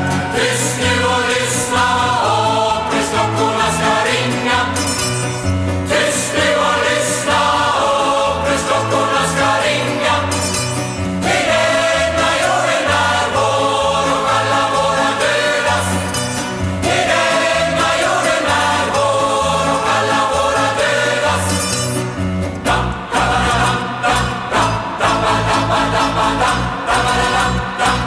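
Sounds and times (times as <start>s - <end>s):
choir singing with band: 0.0s - 28.0s
pulsing bass line: 0.0s - 28.0s.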